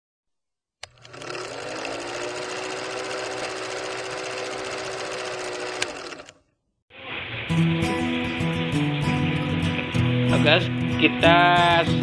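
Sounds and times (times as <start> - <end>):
film projector clattering: 0.8 - 6.4.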